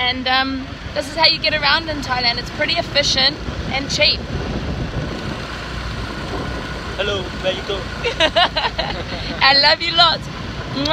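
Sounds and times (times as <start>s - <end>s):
motorbike engine rumbling: 0.0s - 10.9s.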